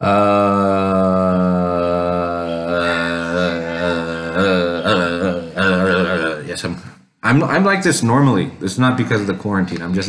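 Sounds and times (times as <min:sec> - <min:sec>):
man's low vocal drone: 0:00.0 - 0:06.7.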